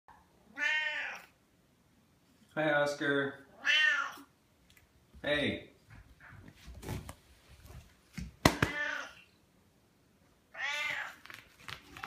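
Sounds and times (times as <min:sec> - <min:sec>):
cat meowing: 0:00.5 - 0:01.4, 0:03.5 - 0:04.3, 0:08.6 - 0:09.3, 0:10.5 - 0:11.2.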